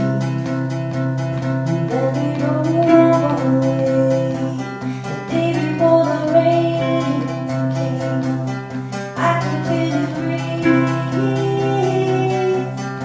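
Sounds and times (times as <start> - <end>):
acoustic guitar strumming: 0.0 - 13.0
ukulele strumming: 0.0 - 13.0
woman singing: 1.6 - 13.0.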